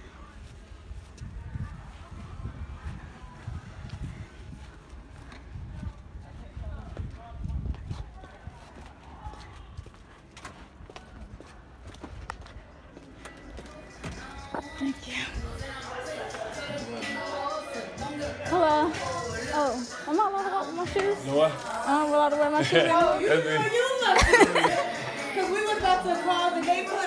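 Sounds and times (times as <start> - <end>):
footsteps on pavement: 0.2 - 15.0
wind buffeting microphone: 0.5 - 10.0.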